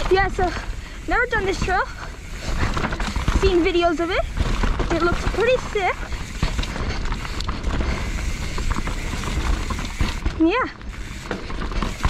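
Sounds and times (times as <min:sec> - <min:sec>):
bike chain and frame rattles: 0:00.0 - 0:12.0
bike tyres rumbling over dirt: 0:00.0 - 0:12.0.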